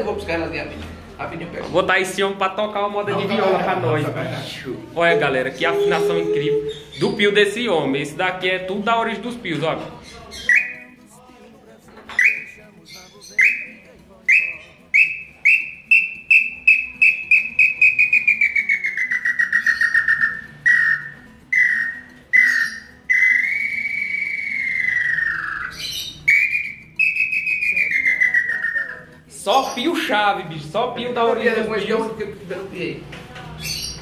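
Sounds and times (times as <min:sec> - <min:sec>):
bird-call whistle notes: 0:05.5 - 0:07.2, 0:10.4 - 0:11.0, 0:12.2 - 0:12.6, 0:13.4 - 0:29.1.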